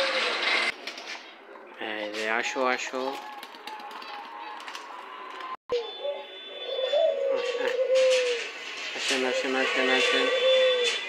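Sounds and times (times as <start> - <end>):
dove cooing: 5.7 - 8.5, 10.0 - 11.0.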